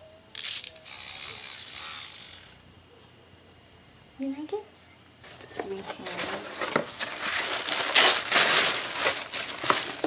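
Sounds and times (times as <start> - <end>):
toy motor buzzing: 0.3 - 2.6.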